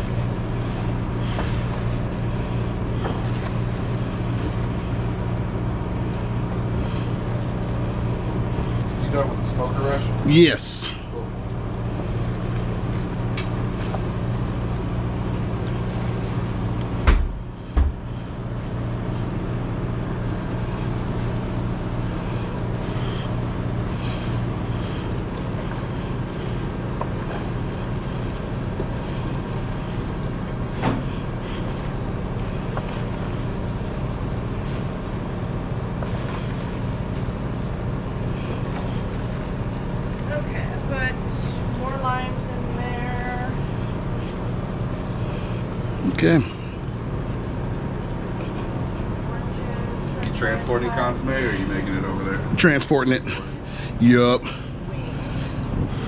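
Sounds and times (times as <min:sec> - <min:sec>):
kitchen machinery humming: 0:00.0 - 0:56.0.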